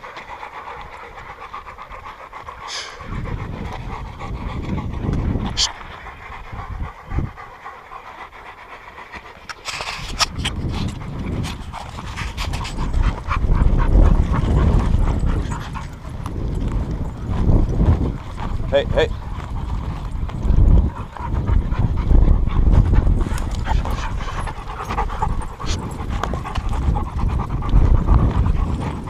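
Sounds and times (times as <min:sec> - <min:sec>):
dogs panting: 0:00.0 - 0:29.0
footsteps crunching on dirt trail: 0:09.1 - 0:29.0
low rumble: 0:10.6 - 0:29.0.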